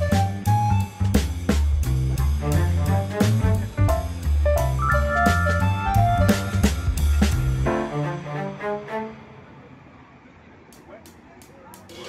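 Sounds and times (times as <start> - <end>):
background music: 0.0 - 9.6
low traffic hum: 0.0 - 12.0.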